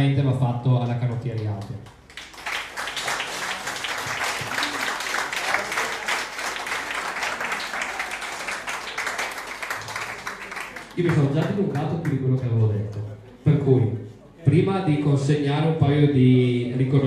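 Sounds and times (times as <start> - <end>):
audience applauding: 2.0 - 12.2.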